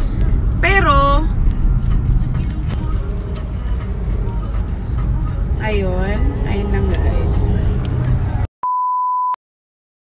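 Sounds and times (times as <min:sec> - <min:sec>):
car cabin road rumble: 0:00.0 - 0:08.5.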